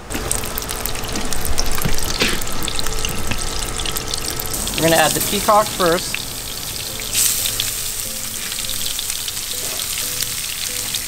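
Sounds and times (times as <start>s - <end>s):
oil and butter sizzling in pan: 0.0s - 11.0s.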